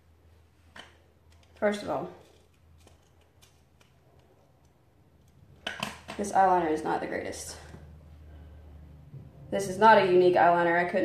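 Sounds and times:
steady low hum: 6.2s - 11.0s.

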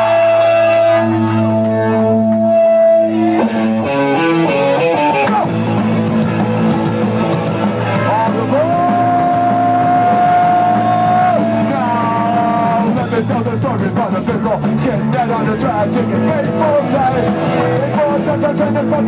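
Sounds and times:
punk band playing live: 0.0s - 19.0s.

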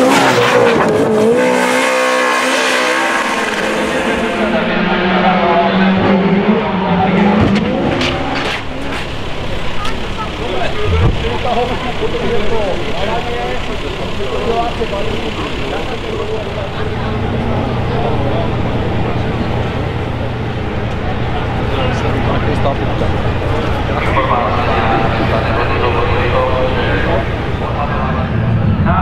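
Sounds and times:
rally car engine revving: 0.0s - 29.0s
people talking over one another: 3.6s - 29.0s
steady low engine hum: 8.2s - 29.0s.

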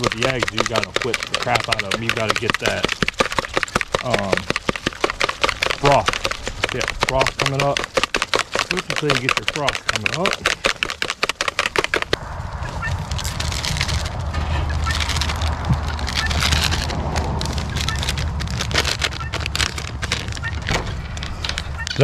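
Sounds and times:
fork whisking eggs in bowl: 0.0s - 12.2s
low rumble and hiss: 12.2s - 19.0s.

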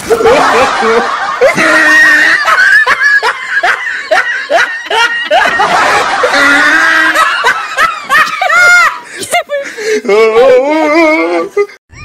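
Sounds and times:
person laughing hard: 0.0s - 12.0s.

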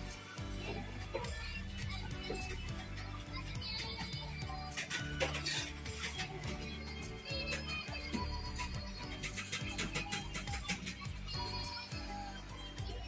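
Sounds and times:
background music with bass: 0.0s - 13.0s.

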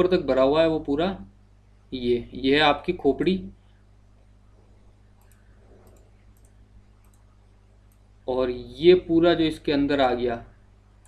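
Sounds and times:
low electrical hum: 0.0s - 11.0s
computer mouse clicks: 5.0s - 8.1s.

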